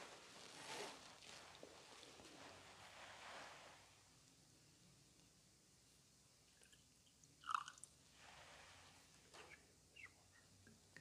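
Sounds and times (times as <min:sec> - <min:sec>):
liquid pouring: 0:07.4 - 0:07.8.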